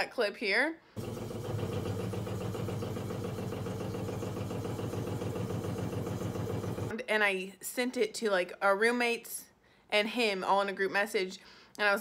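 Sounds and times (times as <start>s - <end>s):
loud steady plumbing hum: 1.0s - 6.9s.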